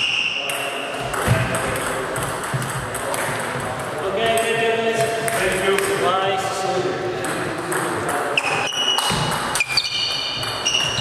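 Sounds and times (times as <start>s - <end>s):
indistinct voices in a hall: 0.0s - 11.0s.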